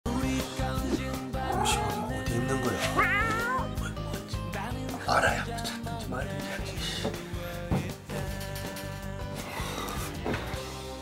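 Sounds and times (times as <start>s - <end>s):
cat meow sound effect: 1.4s - 2.2s, 2.8s - 3.7s.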